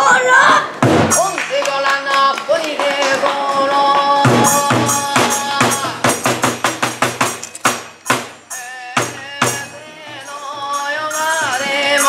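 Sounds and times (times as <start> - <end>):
drum strikes: 0.5 - 1.4, 3.9 - 12.0
jingling metal percussion: 4.4 - 12.0.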